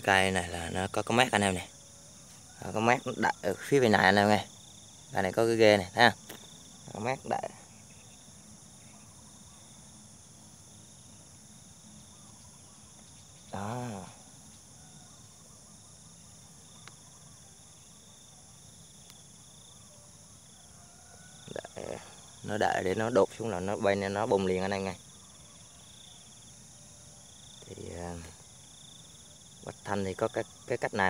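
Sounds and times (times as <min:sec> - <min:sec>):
insects chirring: 0:00.0 - 0:31.0.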